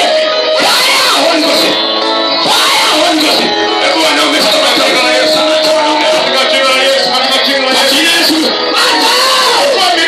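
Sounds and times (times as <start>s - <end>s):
crowd shouting and crying out: 0.0s - 10.0s.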